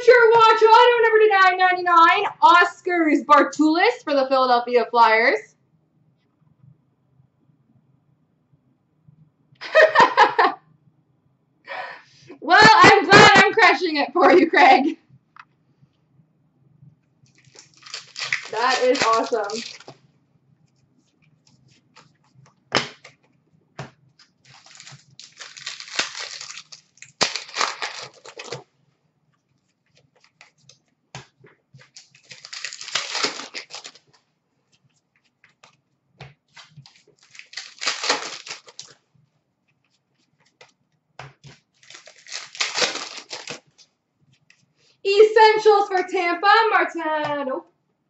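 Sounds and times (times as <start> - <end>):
paper cards rustling: 17.3 - 20.0, 21.0 - 23.1, 24.2 - 28.6, 29.6 - 35.8, 36.5 - 39.0, 41.4 - 44.7.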